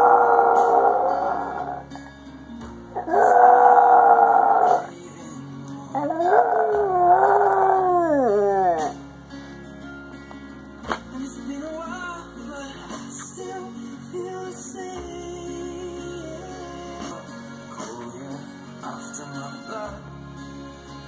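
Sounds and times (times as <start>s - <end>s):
dog howling: 0.0s - 1.8s, 3.0s - 4.9s, 6.0s - 9.0s.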